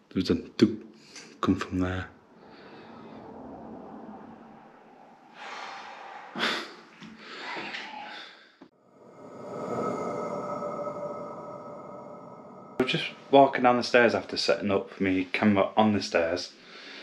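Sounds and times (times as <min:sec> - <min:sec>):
person breathing close to microphone: 0:02.3 - 0:13.3, 0:16.6 - 0:17.0.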